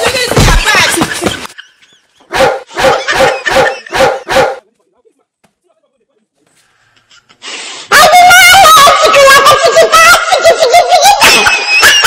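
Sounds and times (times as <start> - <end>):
dog barking: 2.3 - 4.6.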